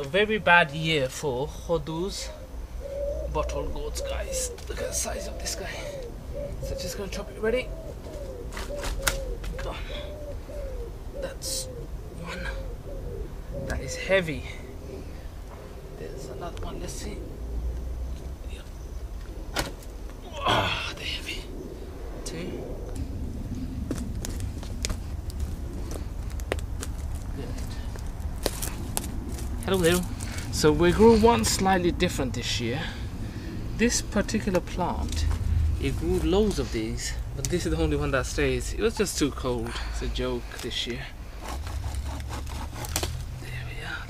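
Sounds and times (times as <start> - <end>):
man talking: 0.0 - 2.4, 3.3 - 7.7, 11.2 - 12.7, 13.6 - 14.7, 16.0 - 17.3, 27.3 - 27.9, 29.6 - 33.1, 33.8 - 41.2, 43.4 - 44.0
bird cooing: 2.1 - 26.2
low rumble: 14.5 - 39.1
footsteps on wood chips: 23.9 - 30.5.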